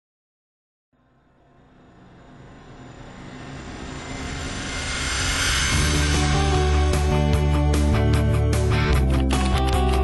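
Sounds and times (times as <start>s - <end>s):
low dense soundtrack: 1.0s - 10.0s.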